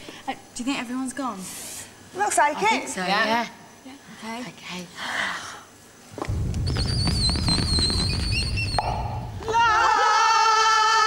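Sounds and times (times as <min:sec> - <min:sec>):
low rumble: 0:06.2 - 0:09.6
wavering whistle-like tone: 0:06.6 - 0:09.3.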